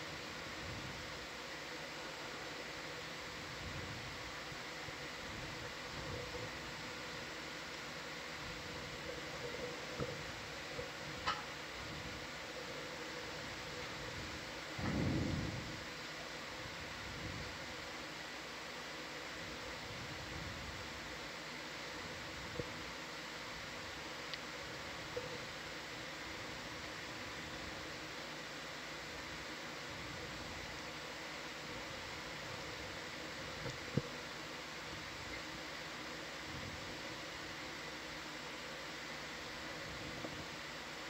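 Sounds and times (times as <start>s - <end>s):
faint electronic hum tones: 0.0s - 41.0s
steady hiss: 0.0s - 41.0s.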